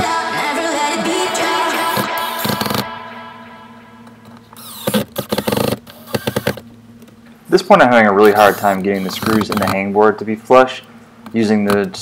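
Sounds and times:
background music: 0:00.0 - 0:04.4
cordless drill driving screw: 0:04.6 - 0:06.6, 0:08.3 - 0:09.8.

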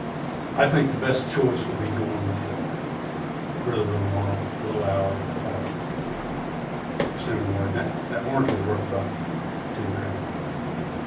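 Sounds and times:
low room hum: 0:00.0 - 0:11.0
steady hiss: 0:00.0 - 0:11.0
person's voice: 0:03.7 - 0:05.8.

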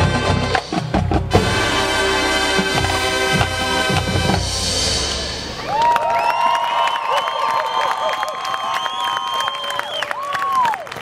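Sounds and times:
audience cheering and shouting: 0:05.2 - 0:10.9
high whistles: 0:05.4 - 0:10.2
scattered clapping: 0:05.7 - 0:11.0.

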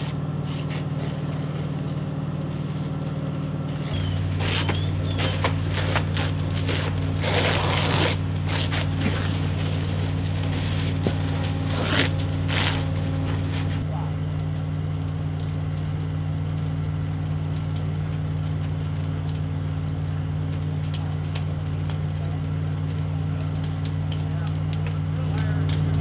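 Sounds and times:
fire cracking: 0:00.0 - 0:26.0
low engine drone: 0:00.0 - 0:26.0.

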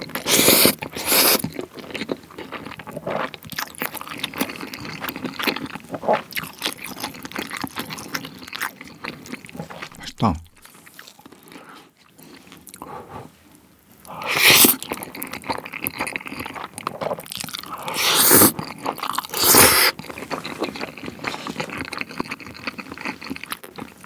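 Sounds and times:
person chewing: 0:00.0 - 0:13.3, 0:14.0 - 0:24.0
person slurping noodles: 0:00.2 - 0:01.4, 0:14.1 - 0:14.8, 0:17.6 - 0:20.0.

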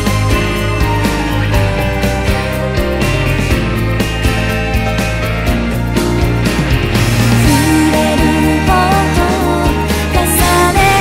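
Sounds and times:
pop song with sung vocals: 0:07.2 - 0:11.0.

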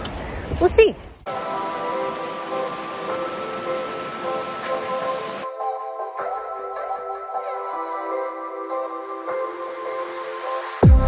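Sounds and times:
soft sustained synth chords: 0:01.3 - 0:11.0.

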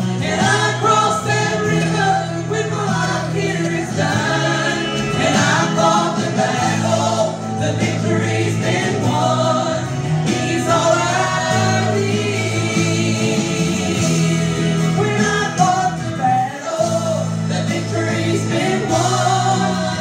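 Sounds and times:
women singing in harmony: 0:00.0 - 0:20.0.

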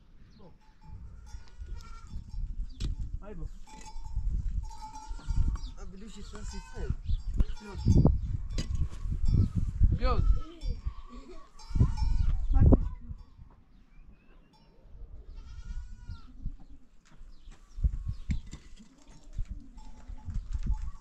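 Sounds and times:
goats bleating: 0:01.2 - 0:02.3, 0:04.8 - 0:07.0, 0:15.3 - 0:16.3.

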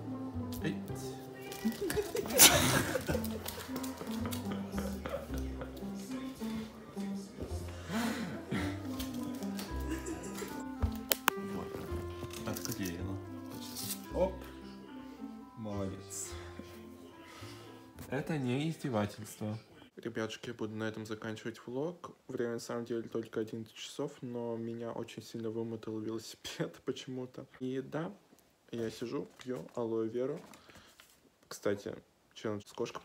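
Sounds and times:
background music with held notes: 0:00.0 - 0:20.0.

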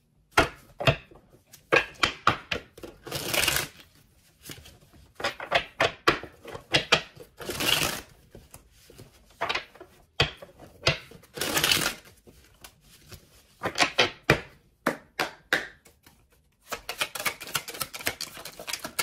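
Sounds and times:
cards being shuffled: 0:02.8 - 0:05.4, 0:06.5 - 0:09.9, 0:10.6 - 0:13.9, 0:15.8 - 0:19.0
cards tapping and snapping: 0:05.2 - 0:12.7, 0:13.6 - 0:19.0.

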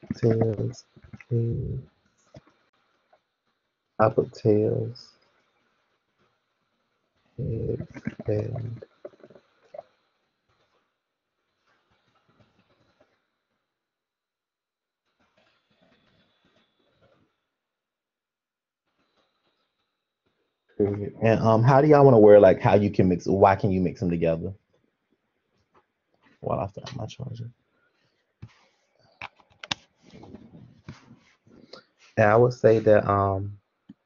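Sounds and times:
faint indistinct sound: 0:00.0 - 0:03.3, 0:04.0 - 0:05.4, 0:07.4 - 0:13.7, 0:18.9 - 0:24.6, 0:26.4 - 0:33.6.

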